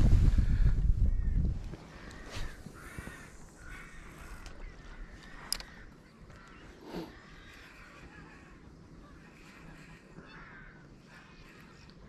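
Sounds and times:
outdoor background noise: 0.0 - 12.0
faint bird calls: 0.3 - 12.0.

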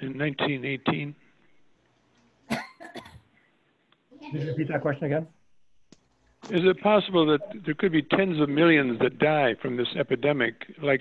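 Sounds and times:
man coughing: 2.5 - 3.2.

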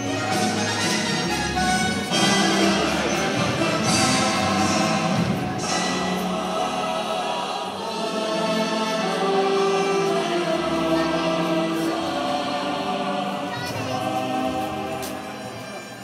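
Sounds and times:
choir singing held notes: 0.0 - 16.0
musical accompaniment: 0.0 - 16.0.

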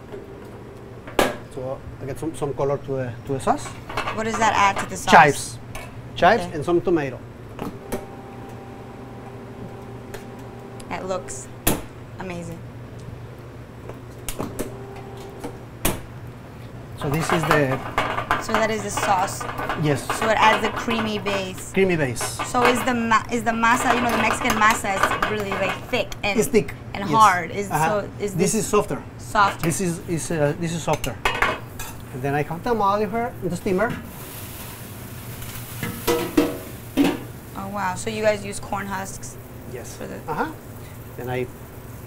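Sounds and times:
steady low hum: 0.0 - 34.1
sauce sizzling in a pan: 34.0 - 38.3, 39.2 - 42.0.

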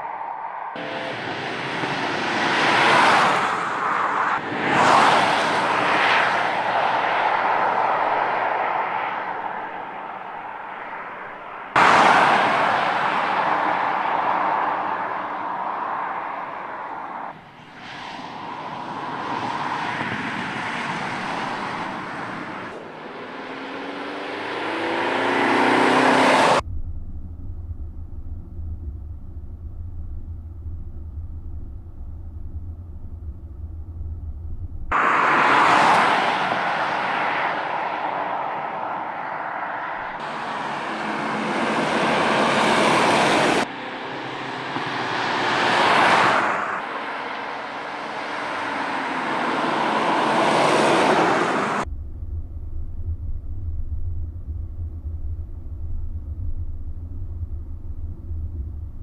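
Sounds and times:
car accelerating past: 11.7 - 26.6, 34.9 - 51.9
low cabin drone: 26.6 - 35.3, 51.8 - 59.0.

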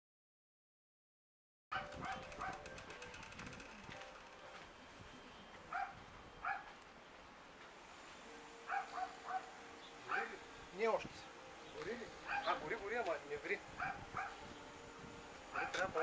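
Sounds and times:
dog barking in sharp yaps: 1.7 - 2.6, 12.3 - 12.5, 15.6 - 15.8.

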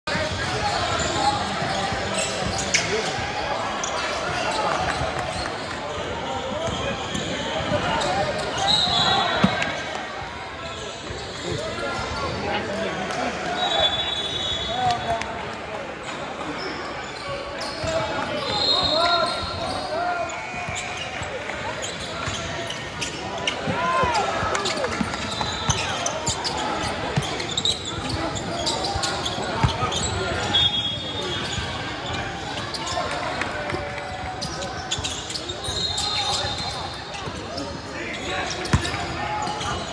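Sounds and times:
sneakers squeaking: 0.1 - 15.2, 16.0 - 39.9
echoing voices in a hall: 0.1 - 39.9.

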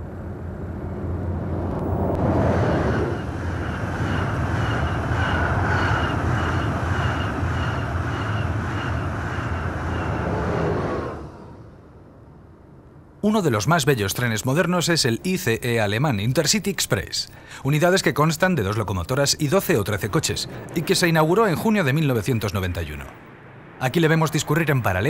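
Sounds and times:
high-speed train passing: 0.0 - 13.2, 14.2 - 25.0.

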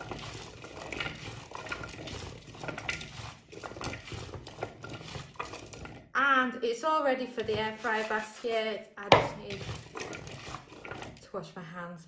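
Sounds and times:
wet shuffling of fries in bowl: 0.0 - 6.0, 7.2 - 11.3.

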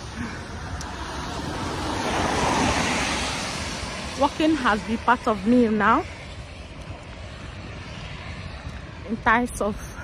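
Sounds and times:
distant road traffic rumble: 0.0 - 10.0
wind on microphone: 0.0 - 10.0.

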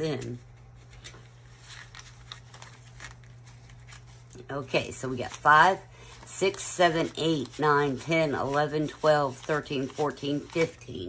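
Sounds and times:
banknotes rustling: 0.0 - 11.0.

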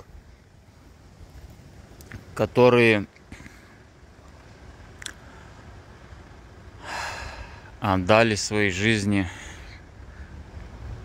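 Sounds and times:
man breathing in: 6.8 - 7.8.

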